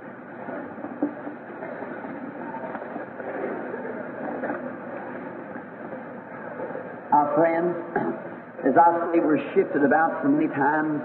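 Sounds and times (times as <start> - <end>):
faint indistinct hall sounds: 0.0 - 11.0.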